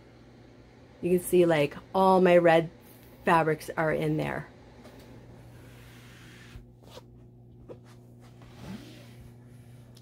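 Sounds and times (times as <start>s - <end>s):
steady low hum: 0.0s - 10.0s
fabric bin pulled from shelf: 8.3s - 9.3s.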